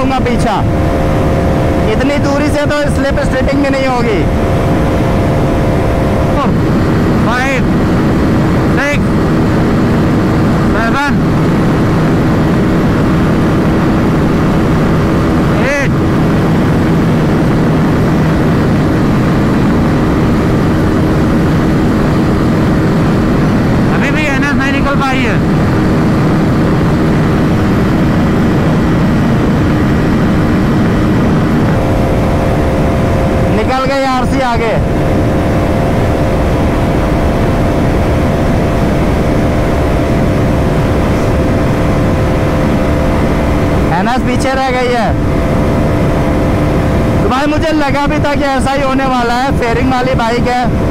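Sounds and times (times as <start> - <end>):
motorcycle engine at full throttle: 0.0 - 50.9
wind rushing over camera: 0.0 - 50.9.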